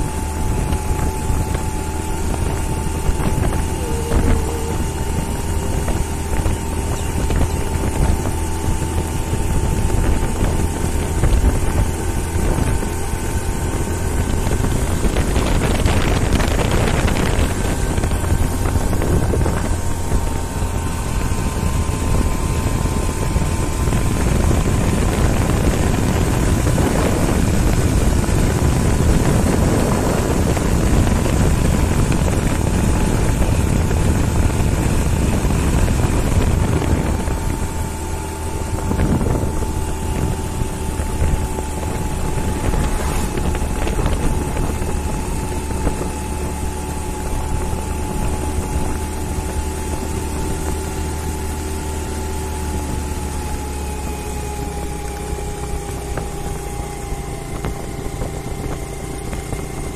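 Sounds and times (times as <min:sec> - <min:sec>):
engine droning with faint whine: 0:00.0 - 0:59.9
wind rushing over microphone: 0:00.0 - 0:59.9.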